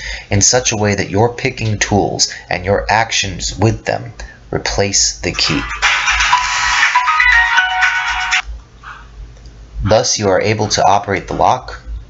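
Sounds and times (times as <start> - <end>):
high electronic melody: 5.3 - 8.4.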